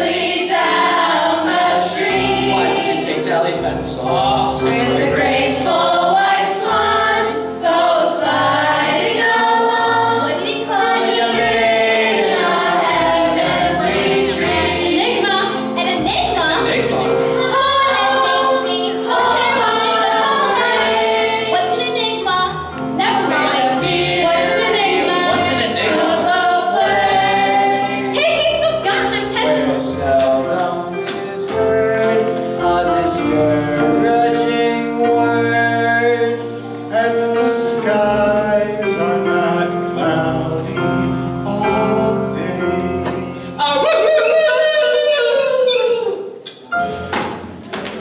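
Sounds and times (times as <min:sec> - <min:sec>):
mixed choir singing: 0:00.0 - 0:45.2.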